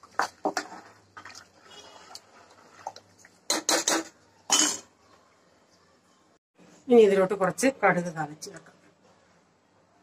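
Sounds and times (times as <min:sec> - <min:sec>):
spoon stirring curry: 0:00.0 - 0:04.4
spoon clanking against pot: 0:03.5 - 0:04.9.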